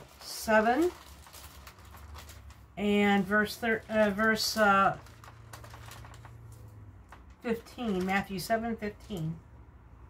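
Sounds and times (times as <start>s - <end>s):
thin pages rustling: 0.0s - 2.8s, 3.5s - 8.4s.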